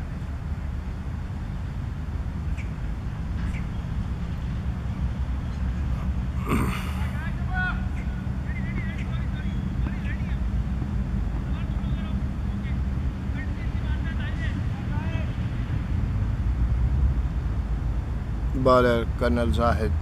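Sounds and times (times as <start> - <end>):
distant voices calling: 5.2 - 10.5.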